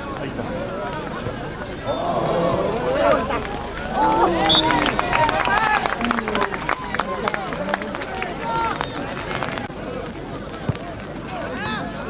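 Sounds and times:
people shouting: 0:01.8 - 0:07.3.

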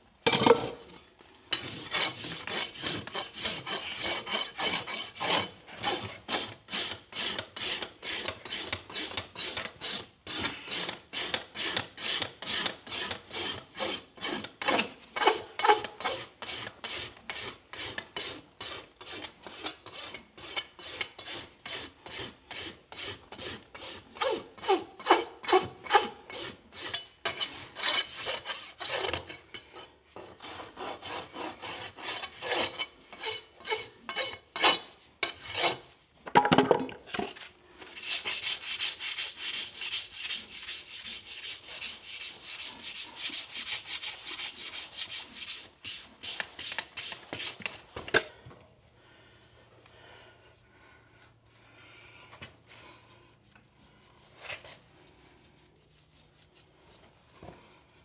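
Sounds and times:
rasp filing hoof: 0:01.5 - 0:29.4, 0:30.1 - 0:36.0, 0:37.9 - 0:47.8.

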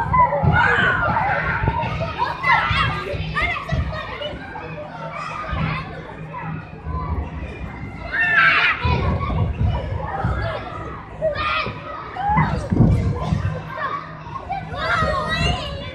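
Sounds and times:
children playing and calling out: 0:00.0 - 0:15.9
children shouting: 0:00.0 - 0:15.9.

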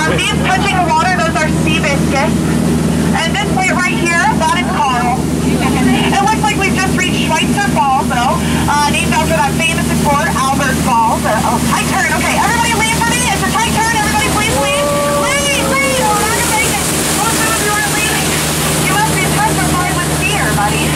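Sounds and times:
boat motor hum: 0:00.0 - 0:20.9.

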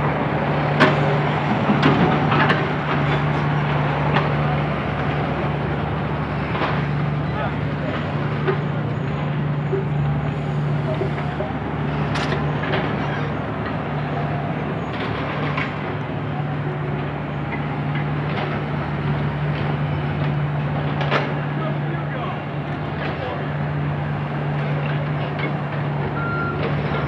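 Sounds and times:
street traffic: 0:00.0 - 0:27.0
voices of passers-by: 0:00.0 - 0:27.0.

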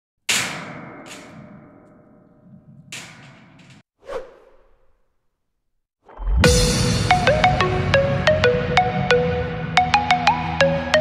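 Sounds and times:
brief swoosh: 0:04.0 - 0:05.0.

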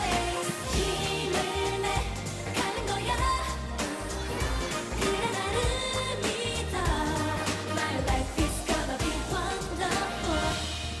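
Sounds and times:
pop backing track: 0:00.0 - 0:11.0
women singing into microphones: 0:00.0 - 0:11.0.

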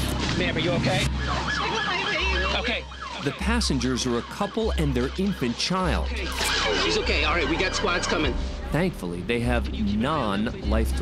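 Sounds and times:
siren yelping: 0:01.0 - 0:08.4.

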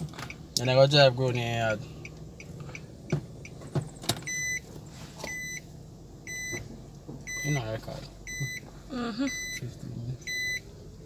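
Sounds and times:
gear shift click: 0:01.3 - 0:05.6
reverse warning beeps: 0:04.3 - 0:06.6, 0:07.2 - 0:10.6.

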